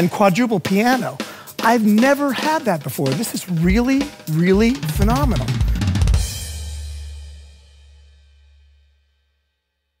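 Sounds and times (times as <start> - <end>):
electronic drum kit hits: 3.6 - 7.5
cymbal crash: 5.5 - 8.8.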